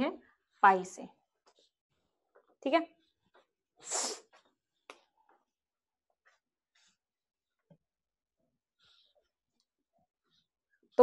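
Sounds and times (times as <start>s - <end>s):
hissy burst of breath: 3.8s - 4.3s.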